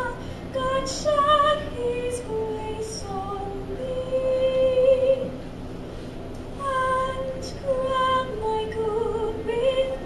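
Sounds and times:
woman singing unaccompanied: 0.0 - 5.4, 6.6 - 10.0.

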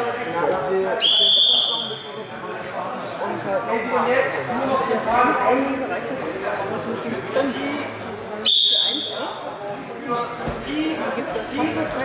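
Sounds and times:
referee's whistle blast: 1.0 - 2.1, 8.5 - 9.2.

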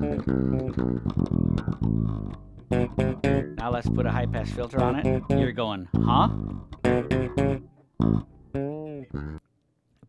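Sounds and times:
electric bass guitar: 0.0 - 9.4.

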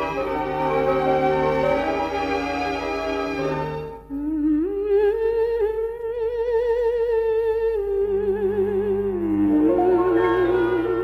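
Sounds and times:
soft orchestral accompaniment: 0.0 - 4.1, 9.2 - 11.0.

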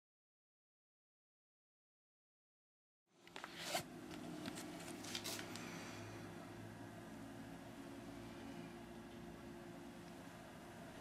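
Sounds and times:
faint low hum: 3.1 - 11.0.

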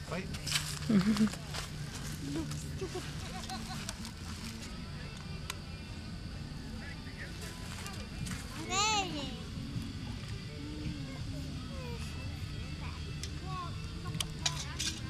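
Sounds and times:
faint voices: 0.0 - 15.0
steady low hum: 0.0 - 15.0.

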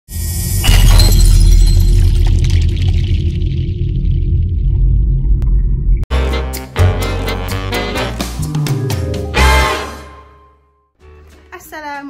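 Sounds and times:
glass shattering crash: 0.6 - 3.0
deep bass rumble: 1.0 - 6.1.

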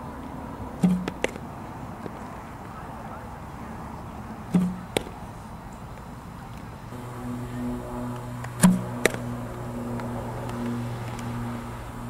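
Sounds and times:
bat cracking against ball: 0.8 - 1.4, 4.5 - 5.2, 8.5 - 9.4.

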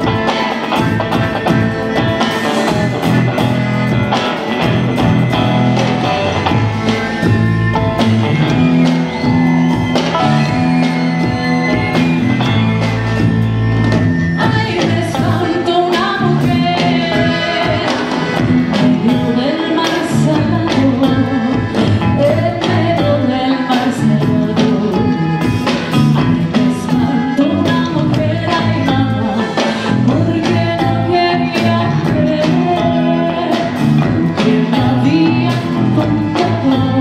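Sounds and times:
bass line: 0.0 - 23.4
drum kit: 0.0 - 37.0
electric guitar: 0.0 - 37.0
live band playing: 0.0 - 37.0
woman singing into a microphone: 14.4 - 37.0.

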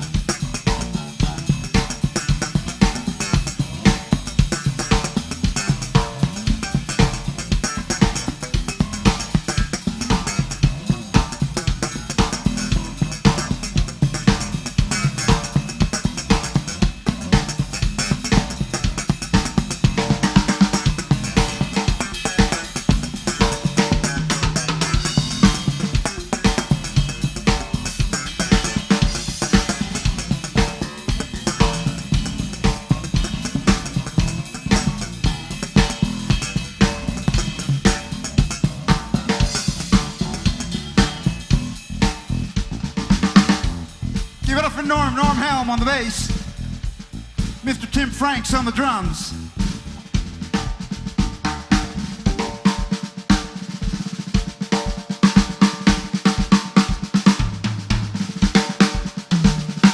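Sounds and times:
blues band playing: 0.0 - 59.9.

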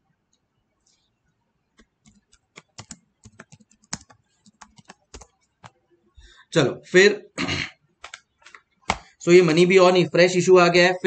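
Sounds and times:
calculator keys clicking: 2.0 - 5.3.

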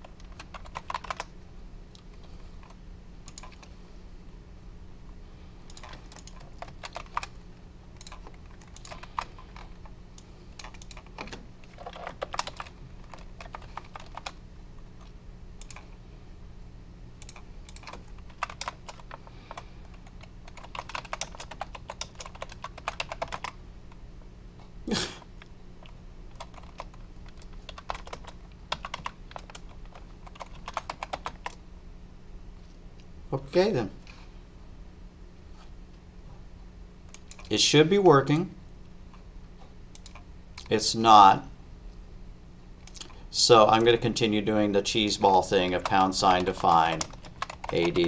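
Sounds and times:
typing on computer keyboard: 0.0 - 1.3, 2.6 - 3.7, 5.7 - 7.4, 8.0 - 9.9, 10.6 - 14.4, 15.0 - 15.9, 17.2 - 23.6, 25.8 - 31.6, 37.1 - 37.5, 39.9 - 40.2, 45.6 - 48.0
steady low hum: 0.0 - 48.0.

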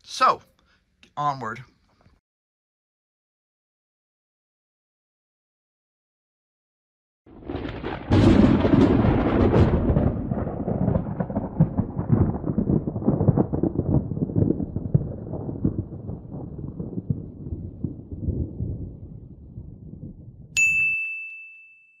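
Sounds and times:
bright bell ding: 20.6 - 22.0.

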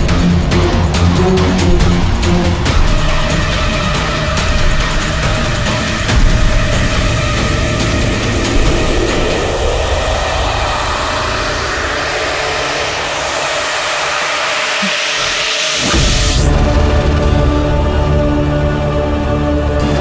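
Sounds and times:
dense rumbling drone: 0.0 - 18.7.

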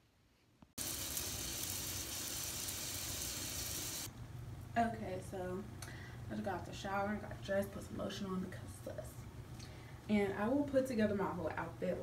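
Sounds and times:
shower water spraying: 0.8 - 4.1.

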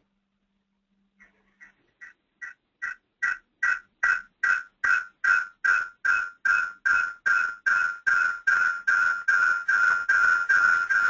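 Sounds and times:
repeating electronic beep: 2.0 - 11.0.

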